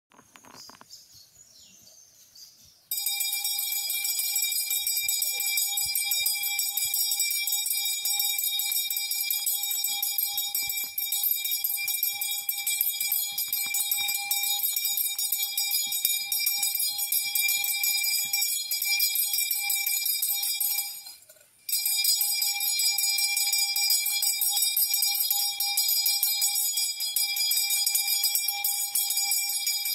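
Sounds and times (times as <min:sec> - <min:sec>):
metal bell ringing rapidly: 0:02.9 - 0:29.9.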